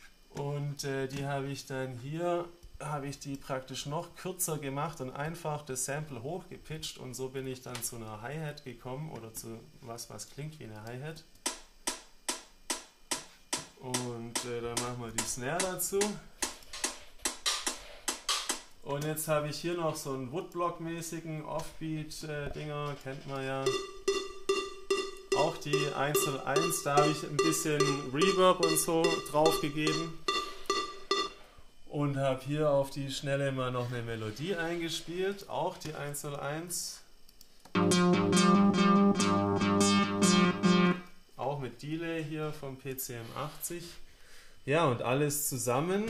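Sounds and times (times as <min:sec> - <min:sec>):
hi-hat ticking: 0:11.4 - 0:18.8, 0:23.2 - 0:31.5
white-noise snare hits: 0:17.3 - 0:18.7
repeating synth notes with delay: 0:23.7 - 0:31.4, 0:37.8 - 0:41.1.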